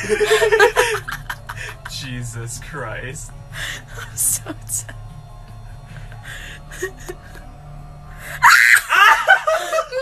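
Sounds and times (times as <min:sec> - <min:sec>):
person laughing loudly: 0:00.0 - 0:01.9, 0:08.4 - 0:10.0.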